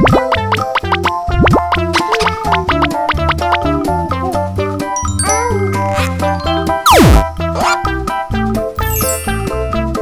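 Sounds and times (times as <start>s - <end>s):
light children's music: 0.0s - 10.0s
cartoon descending sound effect: 5.2s - 7.9s.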